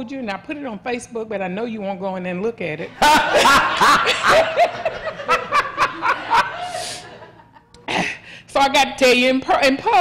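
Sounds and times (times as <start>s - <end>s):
congregation laughing: 2.9s - 7.9s.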